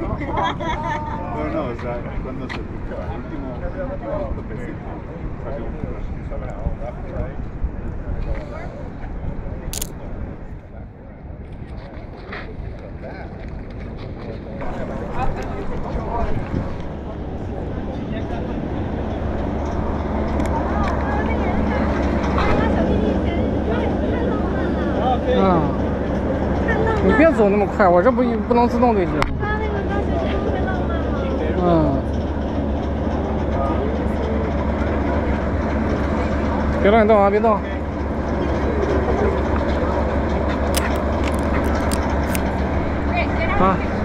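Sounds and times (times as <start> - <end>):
wind buffeting the microphone: 0.0 - 31.5
low outdoor rumble: 0.0 - 44.0
people talking: 20.4 - 32.2, 43.1 - 44.0.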